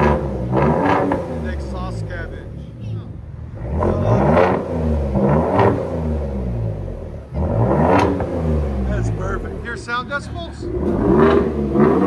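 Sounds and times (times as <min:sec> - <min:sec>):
truck engine revving: 0:00.0 - 0:12.0.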